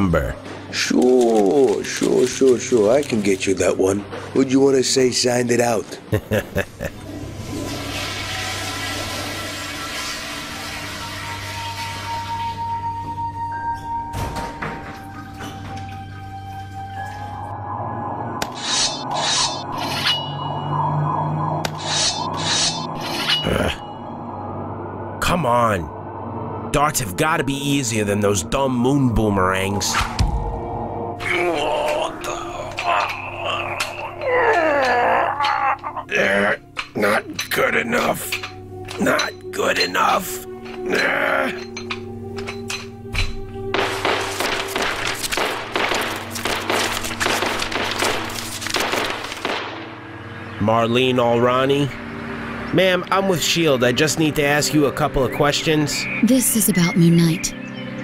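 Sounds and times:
background music: 0.0s - 58.0s
rapid pistol shots: 43.8s - 49.9s.

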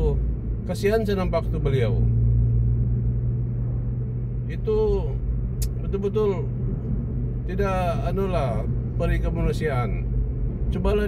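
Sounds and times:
car engine drone: 0.0s - 11.0s
road noise: 0.0s - 11.0s.

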